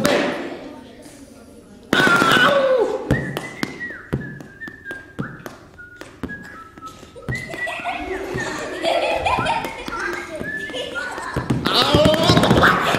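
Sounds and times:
sticks tapping rubber balloon: 2.0s - 12.9s
high whistling tone: 3.0s - 8.2s, 10.3s - 11.2s.

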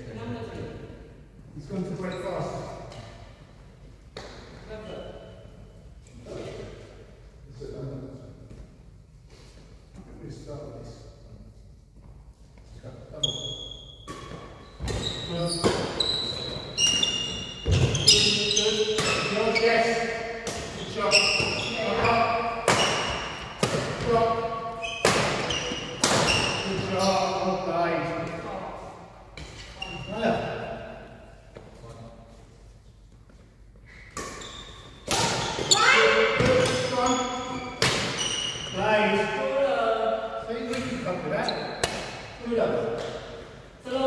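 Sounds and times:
shoes squeaking on wooden court: 4.8s - 5.5s, 13.2s - 27.4s, 29.3s - 30.5s, 33.3s - 38.8s, 40.8s - 42.0s.

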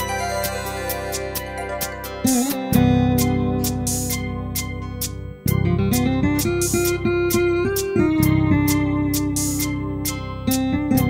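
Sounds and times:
live band playing: 0.0s - 4.2s
crisp high percussion: 0.0s - 5.2s
plucked guitar-like melody: 0.0s - 11.0s.

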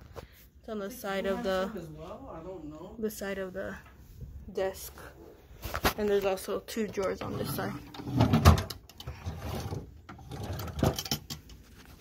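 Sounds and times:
wooden drawer sliding and bumping: 7.2s - 11.3s.

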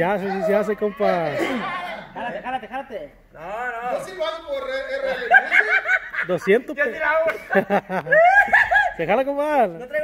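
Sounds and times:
men talking and laughing: 0.0s - 10.0s.

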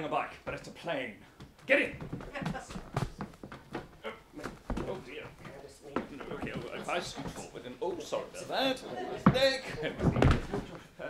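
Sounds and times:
scattered voices: 4.0s - 10.9s
thumps on stage: 9.2s - 10.7s.

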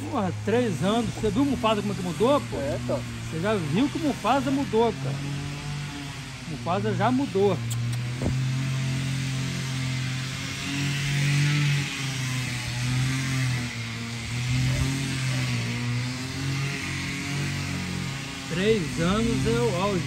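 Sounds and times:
engine running steadily: 0.0s - 20.0s.

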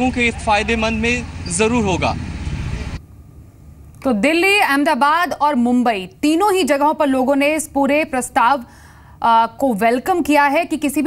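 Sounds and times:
street traffic rumble: 0.0s - 3.9s.

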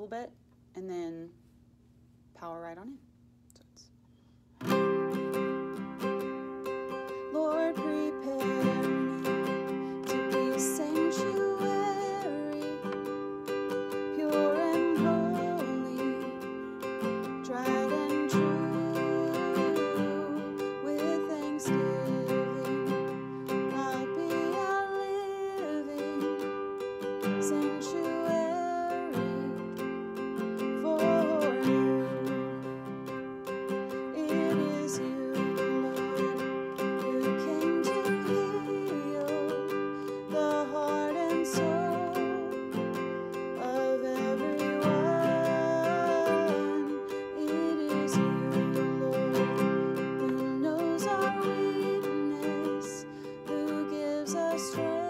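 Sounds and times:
classical guitar strumming: 4.6s - 55.0s.

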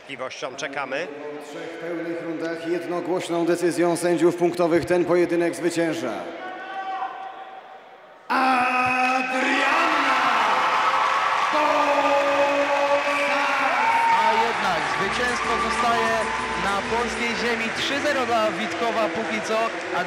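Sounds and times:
crowd cheering and whooping: 9.3s - 20.0s
announcer speaking: 11.6s - 20.0s.

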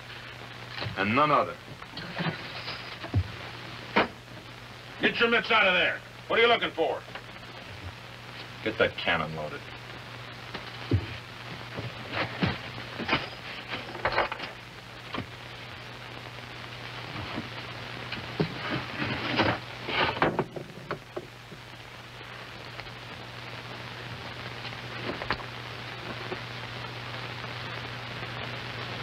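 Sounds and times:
low hum and hiss: 0.0s - 29.0s.

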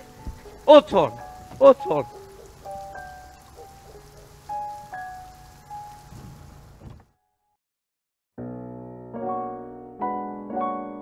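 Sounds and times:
soft sparse melody: 0.0s - 6.7s
steady rain falling: 0.0s - 7.0s.

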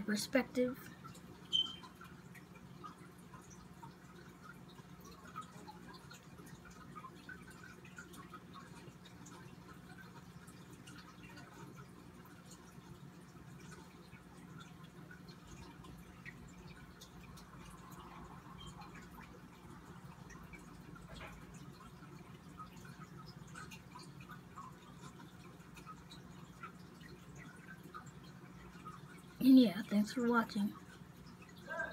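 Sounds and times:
small ticks and clicks: 0.4s - 31.8s.

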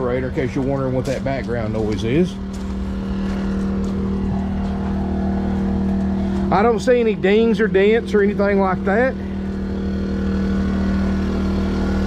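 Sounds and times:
portable generator running: 0.0s - 12.0s.

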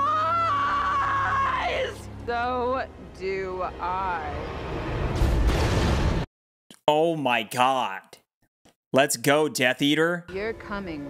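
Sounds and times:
woman screaming: 0.0s - 2.1s.

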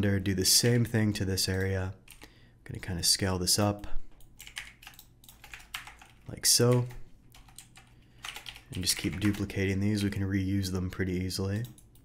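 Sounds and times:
keyboard keys clicking: 4.4s - 9.5s.

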